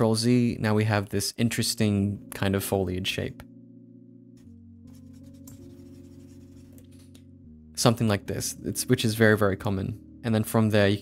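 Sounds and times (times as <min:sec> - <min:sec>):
soft background music: 0:00.0 - 0:11.0
stylus scratching drawing tablet: 0:04.9 - 0:07.1.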